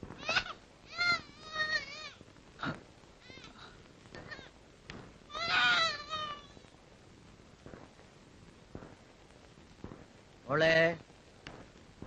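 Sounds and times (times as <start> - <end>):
high-pitched wailing cries: 0.2 - 2.2, 5.3 - 6.6.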